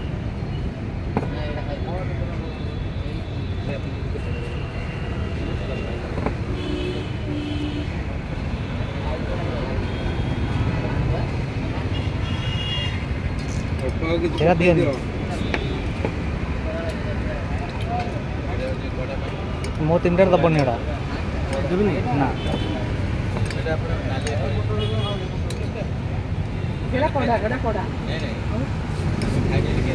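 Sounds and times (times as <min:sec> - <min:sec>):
traffic rumble: 0:00.0 - 0:29.9.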